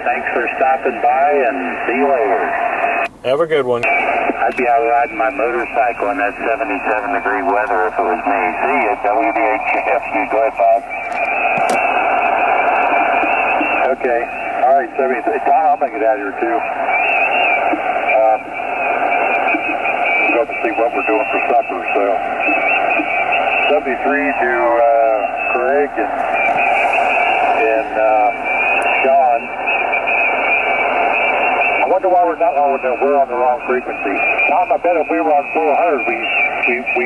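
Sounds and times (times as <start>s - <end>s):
faint voice over radio: 0.0s - 3.0s, 3.6s - 29.6s, 30.6s - 37.0s
radio receiver hiss: 0.0s - 37.0s
wavering high whistle: 16.8s - 20.4s, 22.4s - 31.8s.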